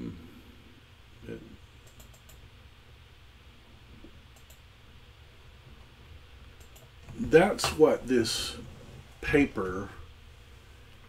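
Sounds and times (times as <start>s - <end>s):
computer keyboard clicking: 1.8s - 2.4s, 4.4s - 4.6s, 6.6s - 6.9s.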